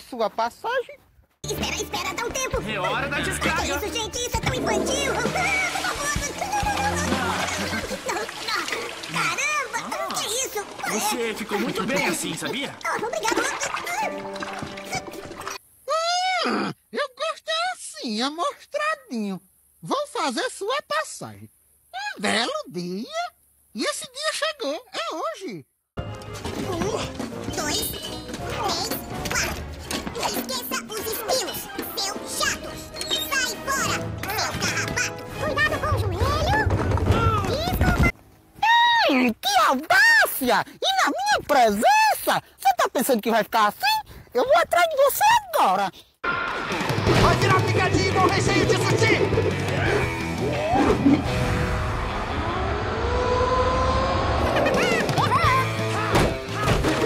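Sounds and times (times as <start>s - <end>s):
background music: 1.4s - 9.5s, 13.4s - 15.6s, 26.0s - 36.6s, 46.5s - 52.3s, 54.4s - 57.0s
water splashing in toilet bowl: 4.4s - 15.6s
high-pitched cartoon voice crying out: 15.9s - 16.8s.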